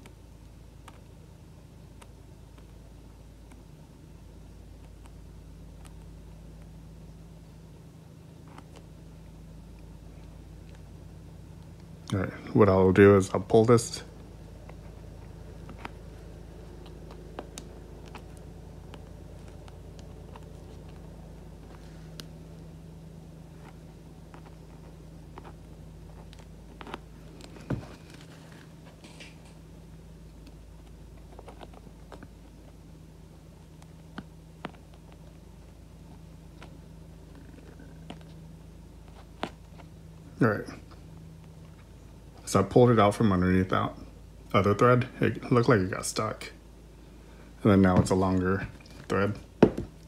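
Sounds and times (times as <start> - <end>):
low electrical hum: 0.0 - 50.0.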